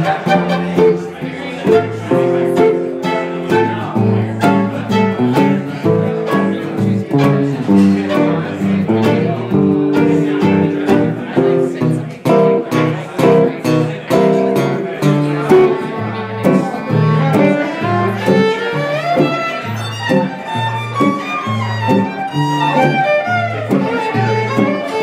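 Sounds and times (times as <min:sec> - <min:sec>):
picked acoustic guitar melody: 0:00.0 - 0:25.0
strummed rhythm guitar: 0:00.0 - 0:25.0
violin: 0:00.0 - 0:25.0.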